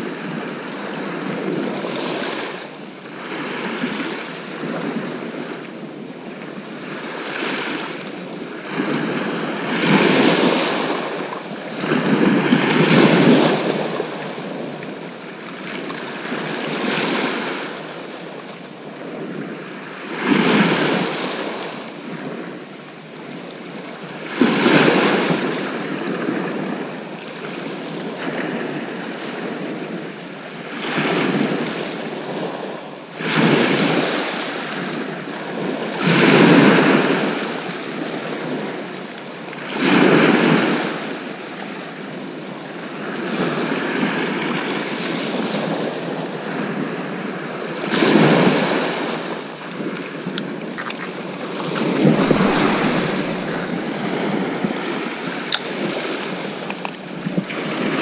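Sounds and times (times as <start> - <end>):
waves breaking on shingle: 51.6 - 57.9.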